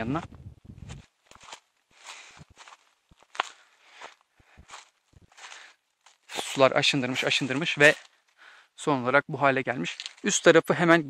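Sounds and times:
footsteps crunching dry leaves: 0:00.1 - 0:08.2.

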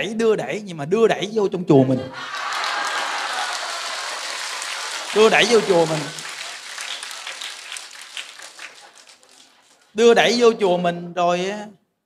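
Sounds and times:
audience applause: 0:02.2 - 0:10.0.

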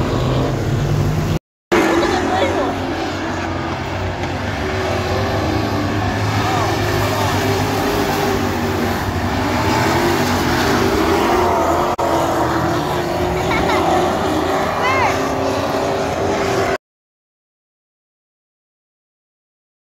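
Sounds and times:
race car engines at speed: 0:00.0 - 0:16.8
spectators' voices: 0:01.7 - 0:08.5, 0:13.0 - 0:15.9.

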